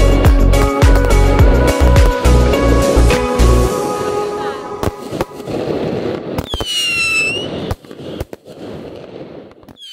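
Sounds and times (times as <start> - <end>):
fireworks crackling: 0.4 - 9.9
fireworks bangs: 4.8 - 9.9
whistling firework: 4.8 - 9.9.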